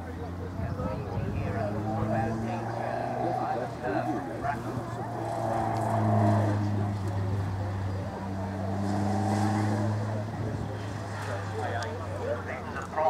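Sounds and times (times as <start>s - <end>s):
race car engine passing by: 0.2s - 12.6s.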